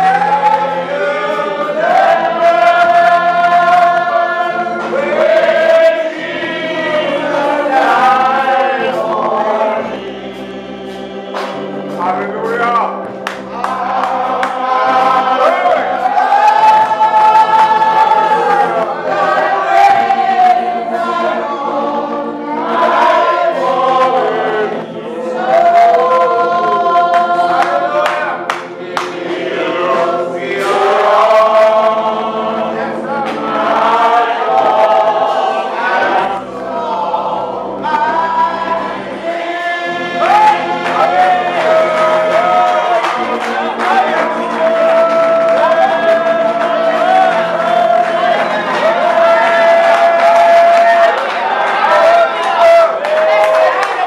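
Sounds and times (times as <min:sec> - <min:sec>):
congregation singing gospel song: 0:00.0 - 0:54.0.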